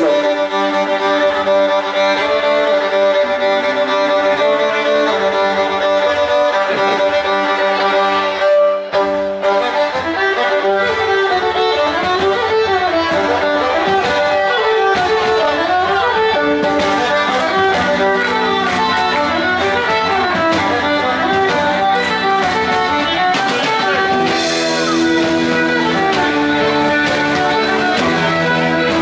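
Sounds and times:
bass guitar: 0.0s - 29.0s
electric violin melody: 0.0s - 29.0s
guitar: 0.0s - 29.0s
drum kit: 6.5s - 7.8s, 8.9s - 29.0s.

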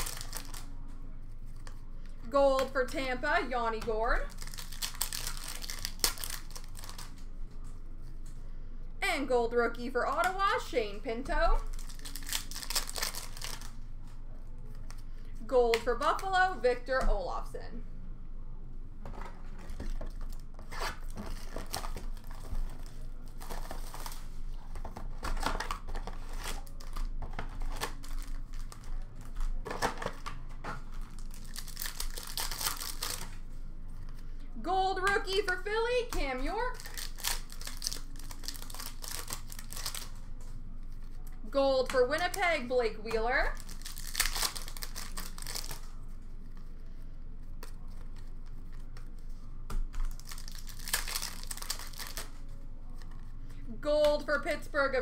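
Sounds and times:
wrappers crinkling and tearing: 0.0s - 0.7s, 4.2s - 7.3s, 11.6s - 13.8s, 19.6s - 33.5s, 36.6s - 41.4s, 43.4s - 46.7s, 47.6s - 53.3s
cards shuffling: 47.6s - 52.4s.

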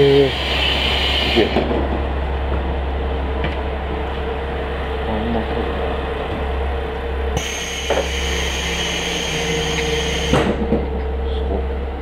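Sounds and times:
diesel railcar engine idling: 0.0s - 12.0s
hiss: 7.4s - 10.6s.

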